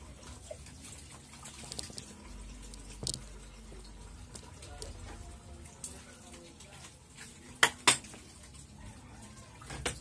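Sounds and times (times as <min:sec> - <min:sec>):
dishes and cutlery clinking: 0:07.2 - 0:08.4.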